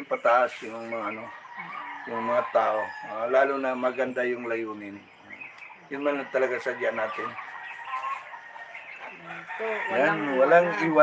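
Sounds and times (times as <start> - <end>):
people talking: 0.0 - 5.0, 5.9 - 7.4, 9.2 - 11.0
faint chicken calls: 0.0 - 11.0.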